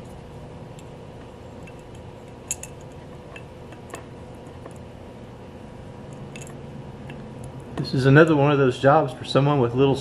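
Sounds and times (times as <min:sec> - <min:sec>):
steady low hum: 0:00.0 - 0:10.0
small metal clicks: 0:01.6 - 0:04.8, 0:06.1 - 0:07.7.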